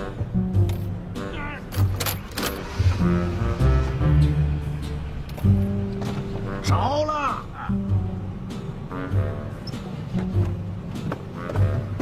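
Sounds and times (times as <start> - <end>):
background music: 0.0 - 12.0
keys jangling in ignition: 1.7 - 2.8.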